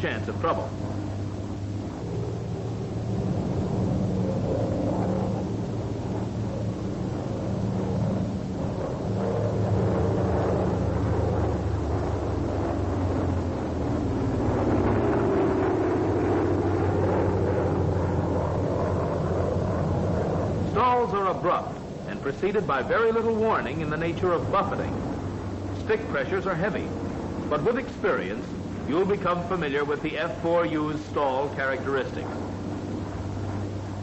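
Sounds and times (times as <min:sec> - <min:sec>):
propeller plane engine droning: 0:00.0 - 0:34.0.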